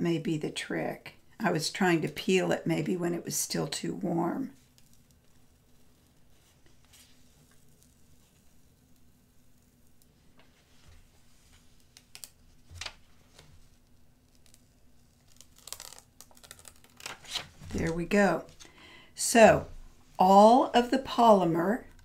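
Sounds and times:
paper backing peeling off fabric: 0:04.6 - 0:18.6.

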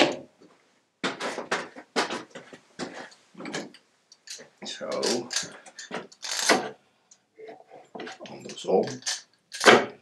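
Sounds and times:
knocks and clatters of tools and wood: 0:00.0 - 0:06.8, 0:07.4 - 0:10.0.

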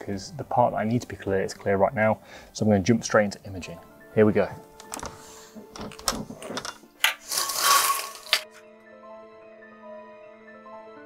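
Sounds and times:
background music: 0:00.0 - 0:11.0
knocks and clicks of handled gear: 0:04.8 - 0:07.5.

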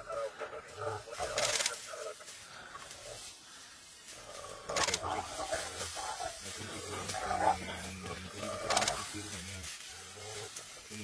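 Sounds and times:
wild dogs twittering calls: 0:00.0 - 0:03.5, 0:04.1 - 0:10.9.

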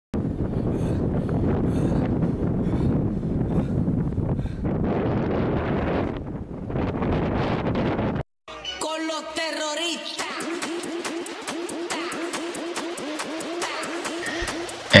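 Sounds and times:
wind buffeting microphone: 0:00.2 - 0:08.2.

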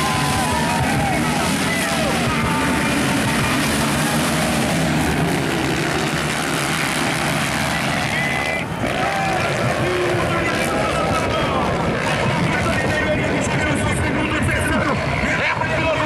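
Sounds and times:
motocross bike engines running: 0:00.0 - 0:16.0.

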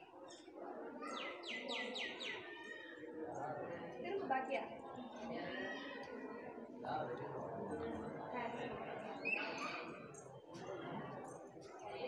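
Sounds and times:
low background murmur: 0:00.0 - 0:12.0.

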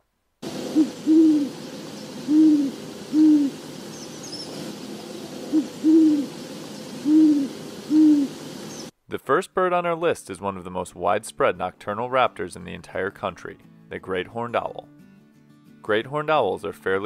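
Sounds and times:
background hiss: 0:00.0 - 0:10.7
owl hooting: 0:00.4 - 0:08.9.

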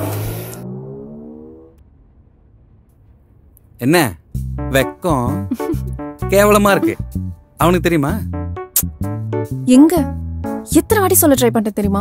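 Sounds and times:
vehicle engine accelerating: 0:00.0 - 0:02.9.

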